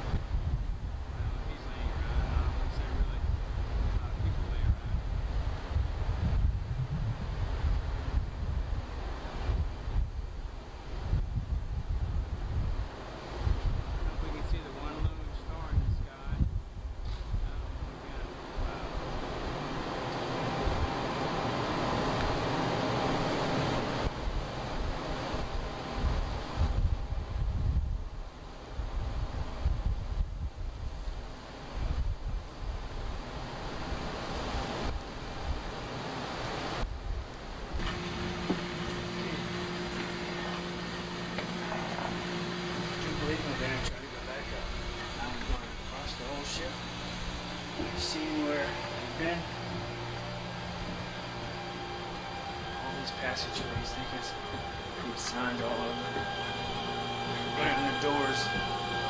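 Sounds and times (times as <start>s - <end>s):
sea rushing along ship: 0.0s - 59.0s
shipboard machinery hum: 0.0s - 59.0s
wind buffeting microphone: 0.0s - 59.0s.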